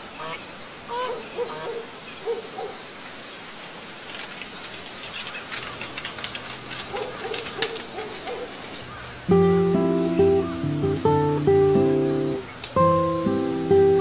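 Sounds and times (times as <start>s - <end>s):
light crackles: 3.1s - 14.0s.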